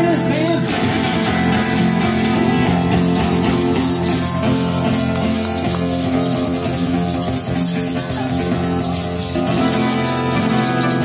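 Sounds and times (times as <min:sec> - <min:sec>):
acoustic guitar chords: 0:00.0 - 0:11.0
tambourines and shakers jingling: 0:00.0 - 0:11.0.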